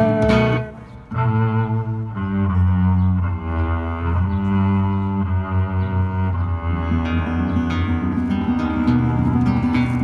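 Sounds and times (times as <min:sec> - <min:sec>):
acoustic guitar: 0:00.0 - 0:01.3, 0:06.6 - 0:10.0
bass: 0:00.0 - 0:10.0
cello sustained notes: 0:00.0 - 0:10.0.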